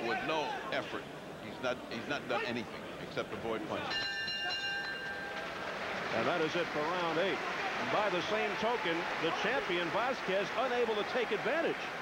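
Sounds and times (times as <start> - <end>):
boxing ring bell ding: 3.9 - 5.4.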